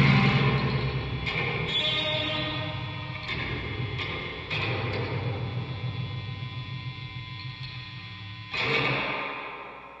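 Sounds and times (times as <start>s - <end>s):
distorted electric guitar chord: 0.0s - 9.9s.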